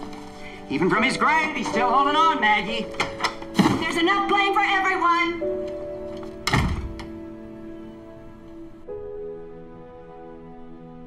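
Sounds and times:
background film music: 0.0 - 11.0
door shutting thunk: 6.2 - 7.2.

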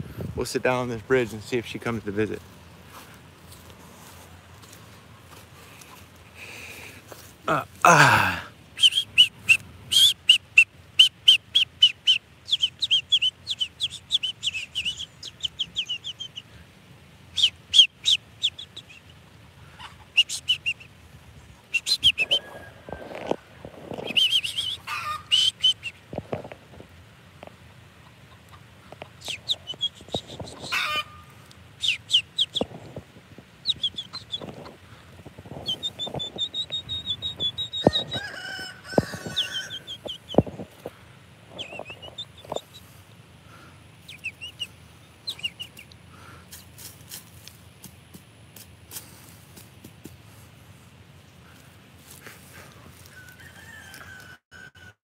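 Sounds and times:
birds chirping: 0.4 - 16.6, 17.3 - 23.0, 23.9 - 26.1, 28.0 - 46.8
hen clucking: 8.8 - 16.6, 19.6 - 20.9, 21.7 - 26.6, 27.9 - 46.6.

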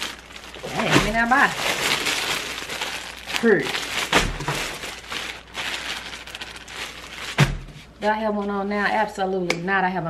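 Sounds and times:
plastic bag crinkling: 0.0 - 8.0.

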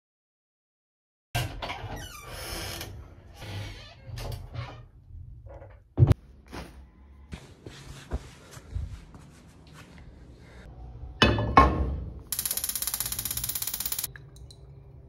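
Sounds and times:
gas hissing with fast ticking: 12.3 - 14.1.

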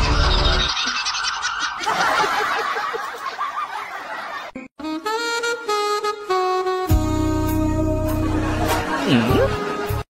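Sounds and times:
fluttering gobble-like warble: 0.0 - 2.3.

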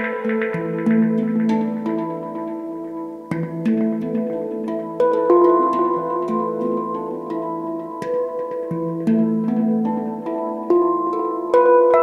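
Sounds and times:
handpan notes ringing: 0.0 - 12.0.

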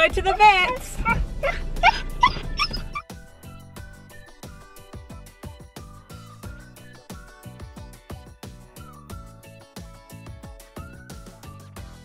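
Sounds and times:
music with steady beat: 0.0 - 12.0
puppies whining: 1.0 - 4.5.

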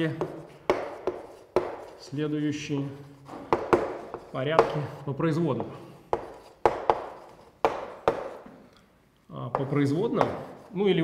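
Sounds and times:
chalk tapping on board: 0.0 - 2.1, 3.2 - 5.0, 5.6 - 8.5, 9.5 - 10.7
chalk writing on blackboard: 0.0 - 8.5, 9.5 - 11.0.

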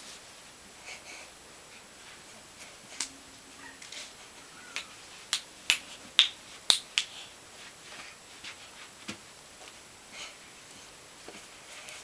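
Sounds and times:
child's hand claps: 4.7 - 7.2.

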